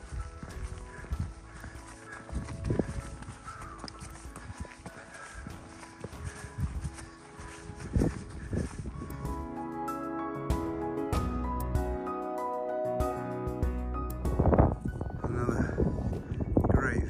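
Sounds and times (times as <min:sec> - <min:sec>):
footsteps on gravel: 0:00.0 - 0:09.5
soft ambient music: 0:00.0 - 0:17.0.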